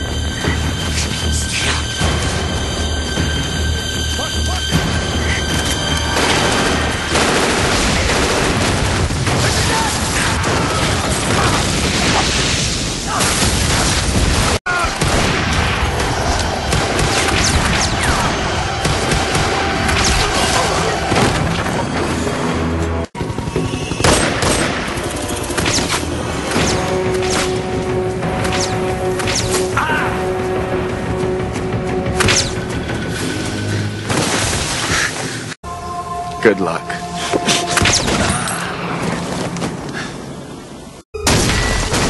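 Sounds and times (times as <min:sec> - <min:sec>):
tense dramatic music: 0:00.0 - 0:42.0
rapid gunfire: 0:06.2 - 0:09.7.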